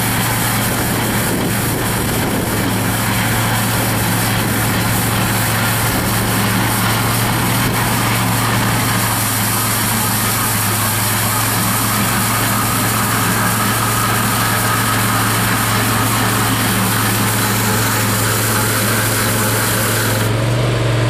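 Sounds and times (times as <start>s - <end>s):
hydraulic broom sweeping: 0.0s - 20.6s
loader engine running: 0.0s - 21.0s.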